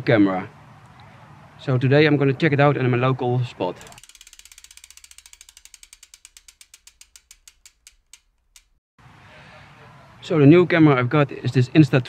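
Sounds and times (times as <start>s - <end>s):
bicycle freewheel ratchet clicking: 3.8s - 8.8s.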